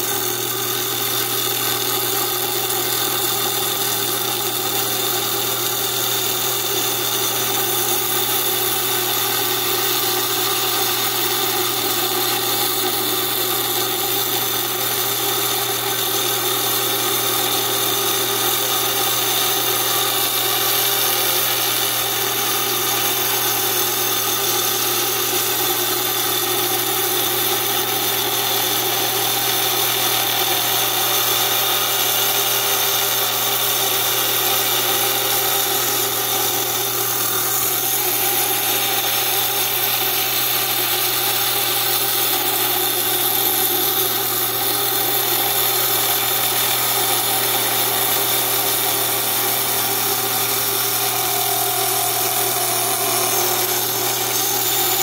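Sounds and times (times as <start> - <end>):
wet saw humming: 0.0 - 55.0.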